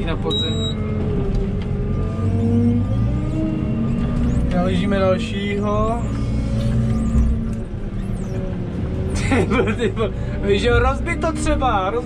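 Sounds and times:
diesel engine running from cab: 0:00.0 - 0:12.0.

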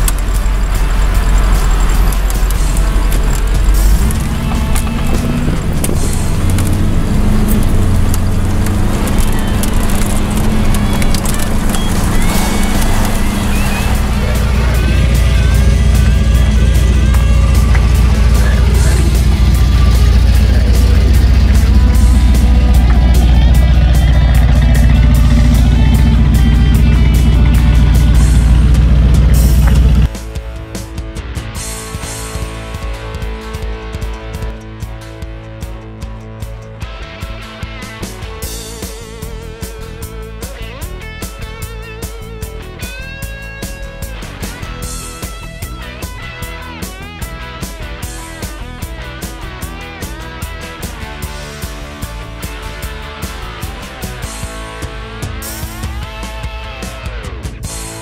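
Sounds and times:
background music: 0:00.0 - 0:58.0
car engine and road rumble: 0:00.0 - 0:58.0.

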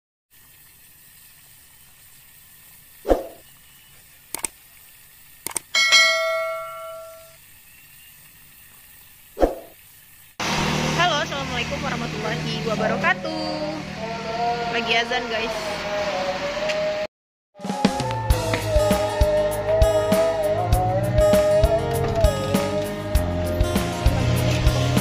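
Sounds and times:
notification bell ding: 0:05.8 - 0:07.3.

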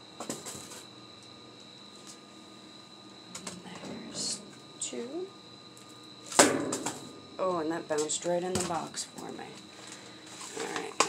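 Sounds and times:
woman speaking: 0:03.7 - 0:05.4, 0:07.4 - 0:09.6, 0:10.5 - 0:11.0.

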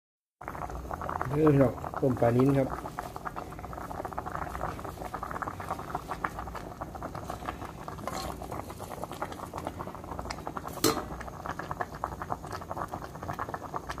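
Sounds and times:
soup boiling and bubbling: 0:00.4 - 0:14.0.

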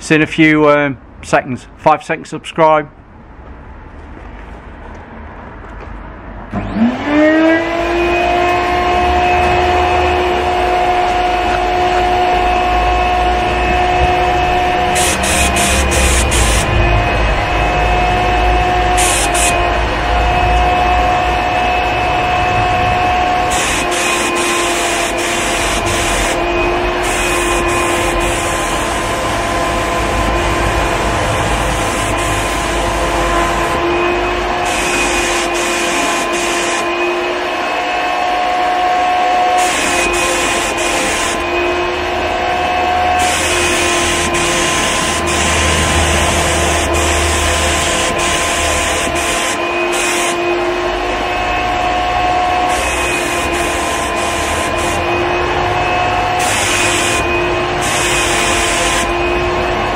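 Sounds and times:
spray turbine whining: 0:06.5 - 0:59.9
spray gun hissing: 0:14.0 - 0:16.8, 0:18.6 - 0:19.6, 0:23.4 - 0:33.9, 0:34.6 - 0:36.9, 0:39.6 - 0:41.4, 0:43.2 - 0:50.5, 0:52.5 - 0:55.4, 0:56.3 - 0:59.2.

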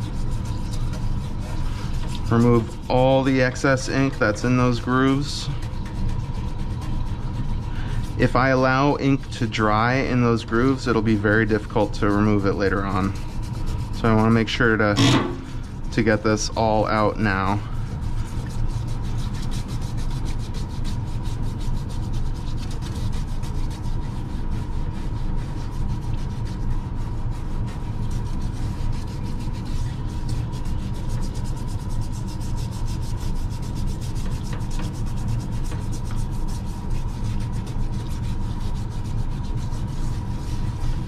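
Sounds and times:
parts washer hum: 0:00.0 - 0:41.0
toothbrush scrubbing metal plate: 0:00.0 - 0:41.0.

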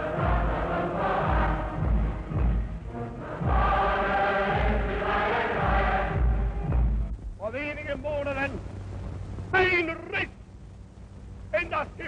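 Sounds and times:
steady low hum: 0:00.0 - 0:12.0
man shouting a speech: 0:09.5 - 0:10.4.

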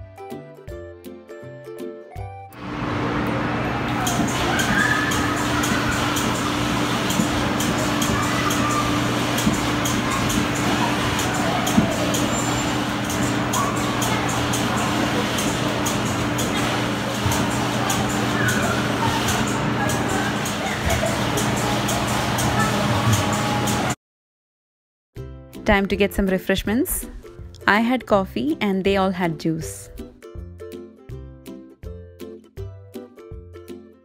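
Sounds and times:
music: 0:00.0 - 0:24.0, 0:25.2 - 0:34.0
spinning ride machine hum: 0:02.6 - 0:24.0.

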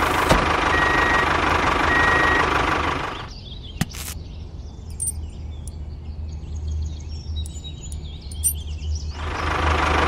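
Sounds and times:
tractor engine running: 0:00.0 - 0:04.2, 0:07.5 - 0:10.0.

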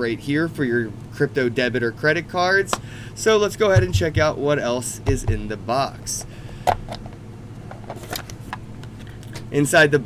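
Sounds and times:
low hum: 0:00.0 - 0:09.5.

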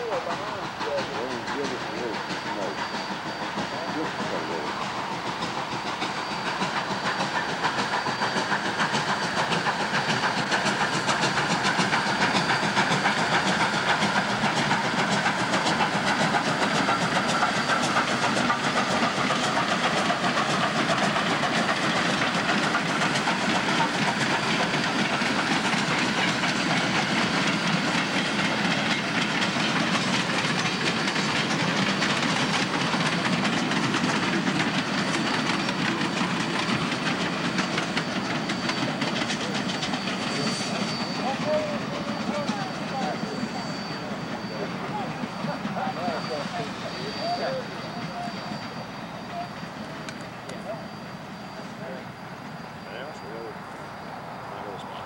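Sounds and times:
freight cars clacking on rails: 0:00.0 - 0:54.0
steam hissing: 0:00.0 - 0:55.0
steam locomotive passing: 0:00.0 - 0:55.0.

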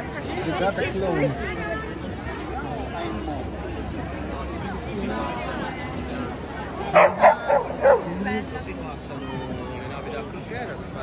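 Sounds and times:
dog barking: 0:06.9 - 0:08.1.

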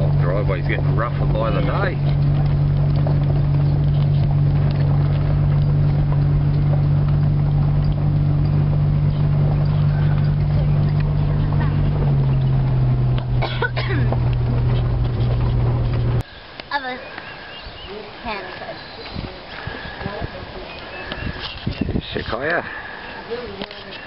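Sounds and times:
vehicle engine running: 0:00.0 - 0:24.0.

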